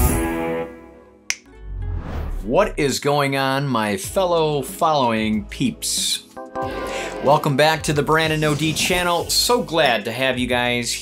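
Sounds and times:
sharp snap: 1.3s - 1.5s.

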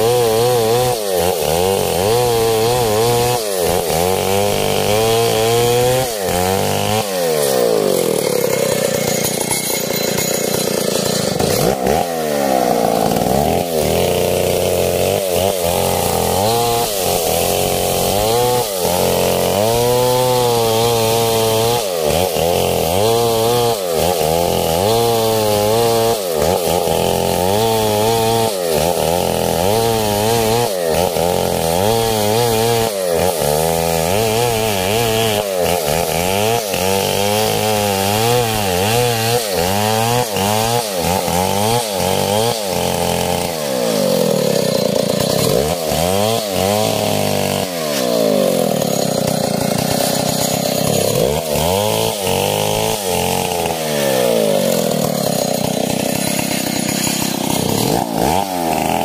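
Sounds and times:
chainsaw cutting wood: 0.0s - 59.0s.

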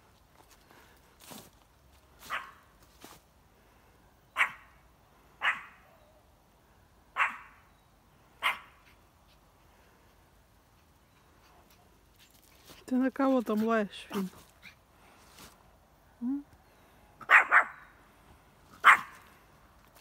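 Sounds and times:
dog barking: 2.3s - 2.6s, 4.4s - 4.7s, 5.4s - 5.8s, 7.2s - 7.6s, 8.4s - 8.7s, 17.2s - 17.8s, 18.8s - 19.2s.

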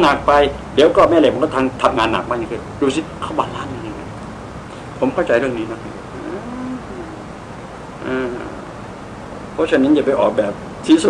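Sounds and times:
steady background hiss: 0.0s - 11.0s
man murmuring: 3.4s - 4.1s, 6.1s - 7.4s, 8.0s - 8.7s.

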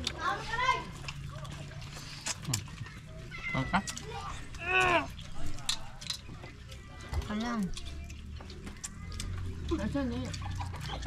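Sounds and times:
clicks and taps of people eating: 0.0s - 11.0s.

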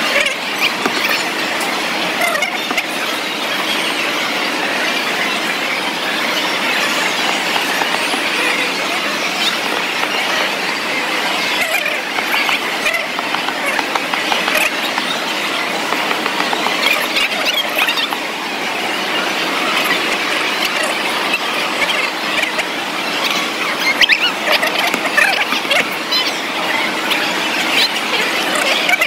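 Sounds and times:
crowd din: 0.7s - 19.6s.

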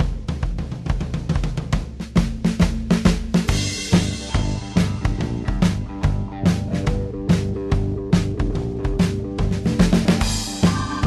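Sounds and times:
bass drum and snare beat: 0.0s - 11.0s
rock band playing live: 3.4s - 11.0s
low bass notes: 3.5s - 11.0s.

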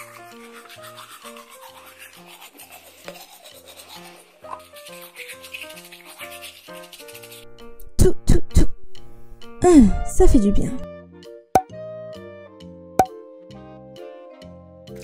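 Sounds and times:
toy toothbrush scratchy rubbing: 0.0s - 7.8s.

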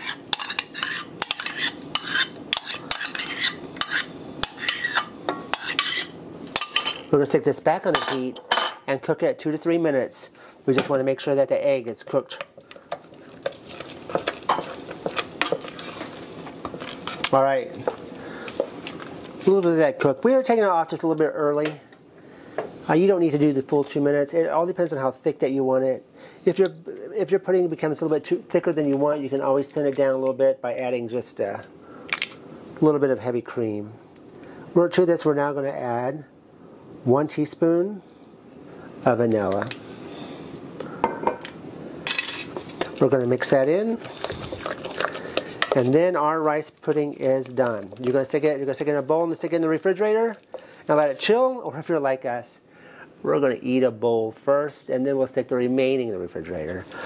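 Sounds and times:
spoon scraping a saucepan: 0.0s - 7.0s, 13.0s - 17.3s.

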